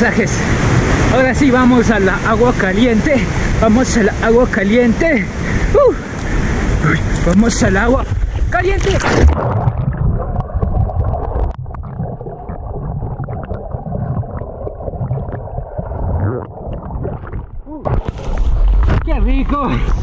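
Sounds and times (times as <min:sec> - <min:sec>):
water splashing: 0:00.0 - 0:20.0
man exclaiming: 0:05.7 - 0:06.0
rumble: 0:08.0 - 0:20.0
muffled underwater bubbling: 0:08.8 - 0:19.0.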